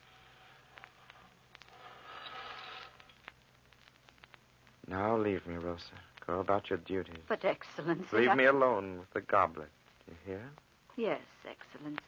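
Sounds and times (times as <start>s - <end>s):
faint clicks: 0.6s - 4.8s, 11.8s - 12.0s.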